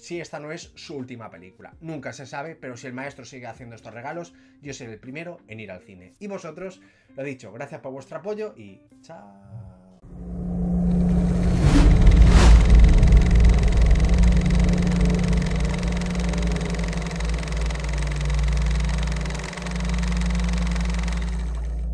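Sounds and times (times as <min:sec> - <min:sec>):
deep low drone: 0:10.0 - 0:21.9
steady low hum: 0:10.0 - 0:21.9.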